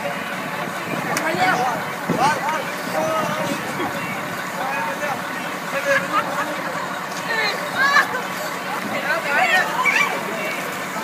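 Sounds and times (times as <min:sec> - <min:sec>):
young people's voices: 0:00.0 - 0:11.0.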